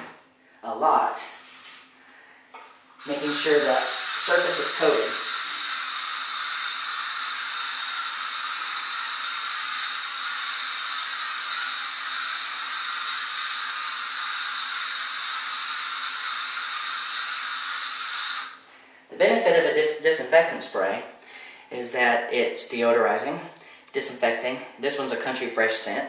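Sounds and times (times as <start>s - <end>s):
aerosol spray hissing: 3.0s - 18.7s.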